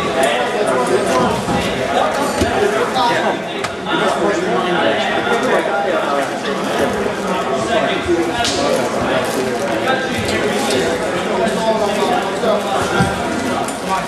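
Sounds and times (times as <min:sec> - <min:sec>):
chatter of people talking: 0:00.0 - 0:14.0.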